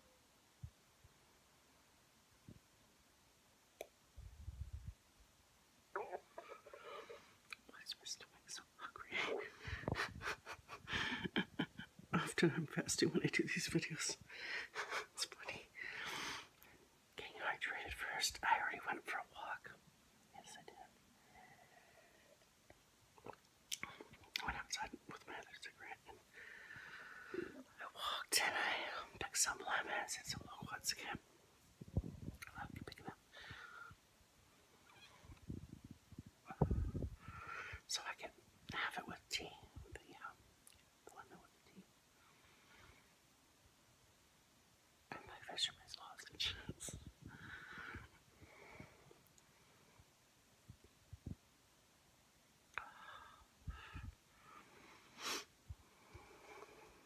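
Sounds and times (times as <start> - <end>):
woman whispering: 5.9 - 10.0, 11.3 - 14.3, 15.0 - 15.9, 17.2 - 21.0, 23.8 - 26.2, 27.5 - 31.2, 32.3 - 33.2, 36.4 - 37.1, 37.7 - 40.4, 41.0 - 41.9, 45.1 - 47.4, 52.8 - 54.1.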